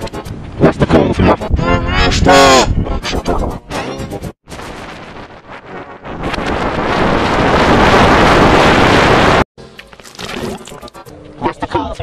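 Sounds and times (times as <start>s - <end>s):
distorted rushing noise: 4.5s - 9.5s.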